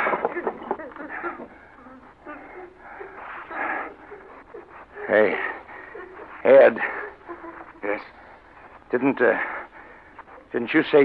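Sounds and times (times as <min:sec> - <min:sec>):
woman moaning and sobbing: 0:00.0 - 0:08.9.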